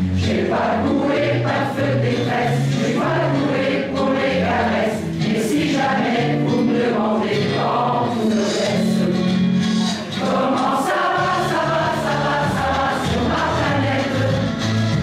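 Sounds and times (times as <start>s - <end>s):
mixed choir singing: 0.0s - 15.0s.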